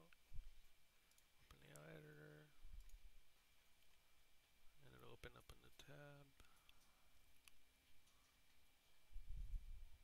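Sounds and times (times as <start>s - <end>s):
computer mouse clicks: 1.1s - 1.9s, 2.8s - 3.0s.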